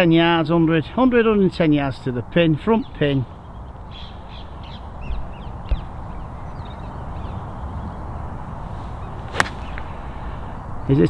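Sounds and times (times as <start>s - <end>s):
birds chirping: 0.5s - 11.0s
golf club striking ball: 9.0s - 10.2s.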